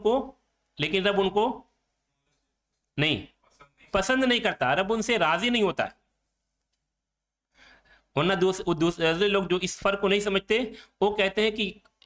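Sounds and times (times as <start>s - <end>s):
man breathing in: 7.5s - 8.1s.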